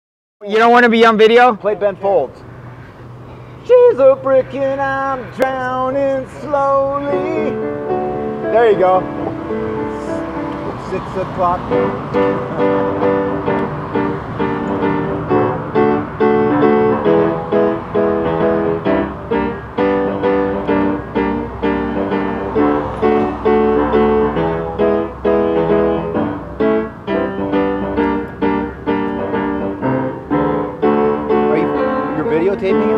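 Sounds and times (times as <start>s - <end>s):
piano chords: 2.4s - 32.9s.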